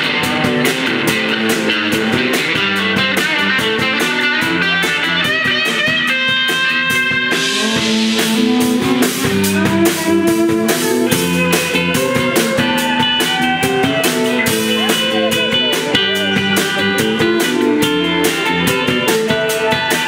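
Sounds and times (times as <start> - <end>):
drum kit with cymbals: 0.0 - 20.0
electric guitars: 0.0 - 20.0
long held high guitar notes: 0.0 - 20.0.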